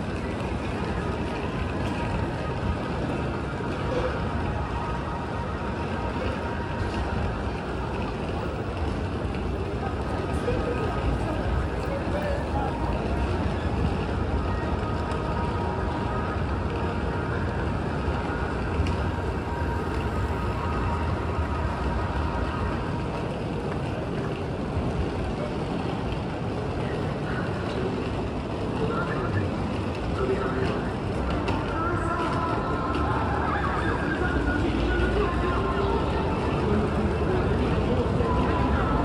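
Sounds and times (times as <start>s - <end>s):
passers-by talking: 0.0s - 39.0s
urban noise: 0.0s - 39.0s.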